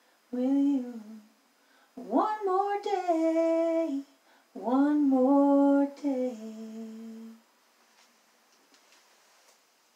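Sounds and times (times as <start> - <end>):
woman singing unaccompanied: 0.3 - 1.4, 2.0 - 7.4.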